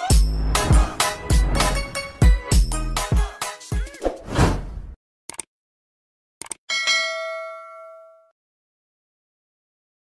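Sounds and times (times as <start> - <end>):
notification bell ding: 6.7 - 8.3.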